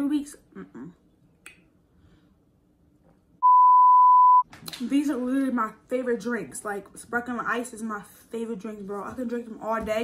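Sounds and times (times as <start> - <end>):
high-pitched test tone bleep: 3.4 - 4.4.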